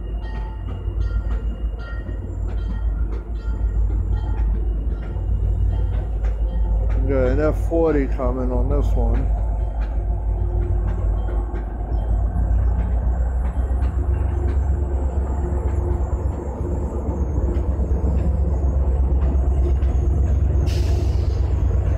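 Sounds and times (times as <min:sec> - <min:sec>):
diesel locomotive engine rumbling: 0:00.0 - 0:21.9
train coaches rumbling past: 0:00.0 - 0:21.9.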